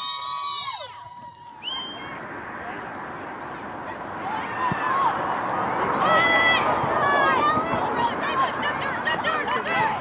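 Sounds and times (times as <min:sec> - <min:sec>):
spectators cheering: 0:00.0 - 0:02.3.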